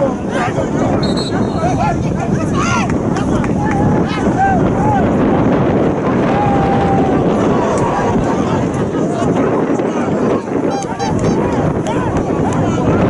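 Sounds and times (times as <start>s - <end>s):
spectators shouting and chattering: 0.0s - 13.0s
wind rumbling on microphone: 0.0s - 13.0s.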